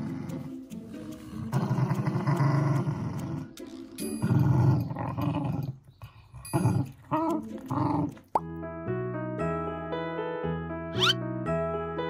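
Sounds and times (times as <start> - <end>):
dog growling: 0.0 - 8.4.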